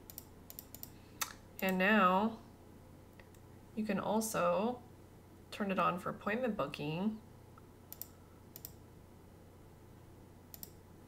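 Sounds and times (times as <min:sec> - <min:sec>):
computer mouse clicks: 0:00.0 - 0:01.8, 0:07.9 - 0:08.8, 0:10.5 - 0:10.8.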